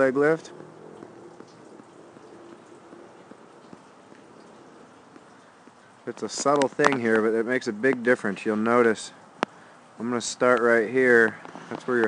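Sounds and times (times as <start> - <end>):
low even hiss: 0.0 - 12.0
light ticks: 0.5 - 8.8, 9.4 - 9.6.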